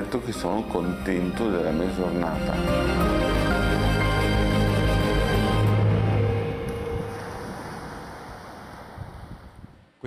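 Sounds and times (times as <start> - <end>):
ocean surf: 2.6 - 10.0.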